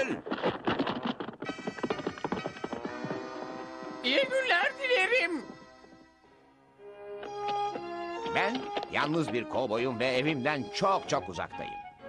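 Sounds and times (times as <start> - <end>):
cartoon hooves clip-clopping: 0.0 - 6.1, 7.2 - 11.8.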